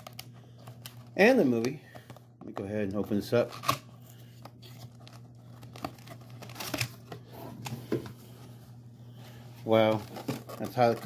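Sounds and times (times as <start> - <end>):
cardboard scratching and tearing: 10.0 - 11.0.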